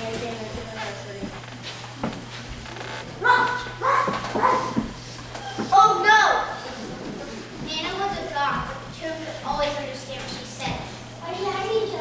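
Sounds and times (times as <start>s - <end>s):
child imitating dog barking: 3.2s - 4.8s.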